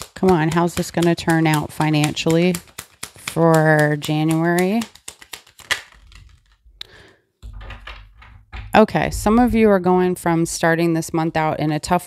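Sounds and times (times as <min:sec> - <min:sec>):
cards tapping on a tabletop: 0:00.0 - 0:06.6
low rumble of handling noise: 0:07.5 - 0:10.1.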